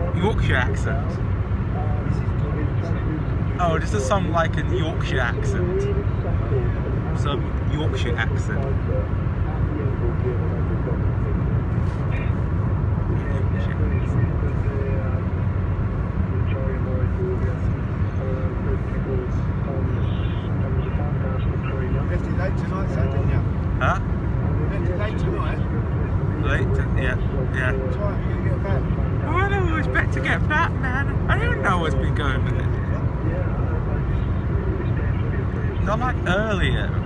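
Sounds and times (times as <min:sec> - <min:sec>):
car road and engine rumble: 0:00.0 - 0:37.0
faint talk radio voices: 0:00.0 - 0:37.0.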